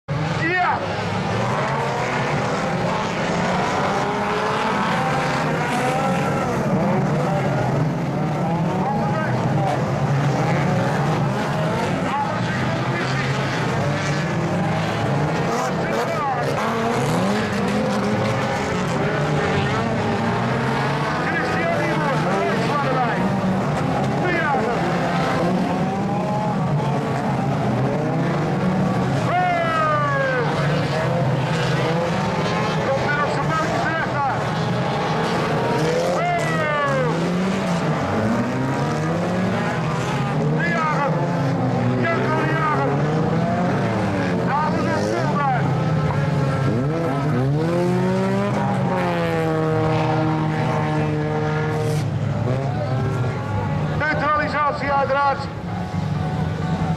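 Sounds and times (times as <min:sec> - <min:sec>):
racing car engines revving: 0:00.0 - 0:56.9.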